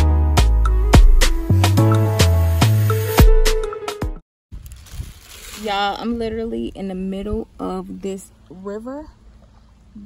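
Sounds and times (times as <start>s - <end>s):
background music with steady beat: 0.0s - 4.2s
woman speaking: 5.5s - 9.2s.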